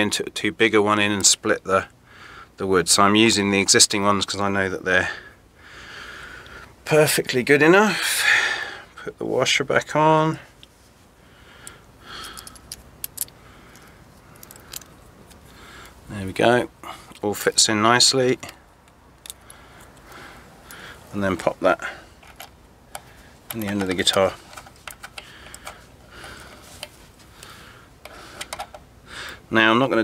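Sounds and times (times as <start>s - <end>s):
small metal parts clicking: 11.6s - 15.5s, 18.4s - 20.8s, 22.2s - 27.0s, 28.0s - 28.8s.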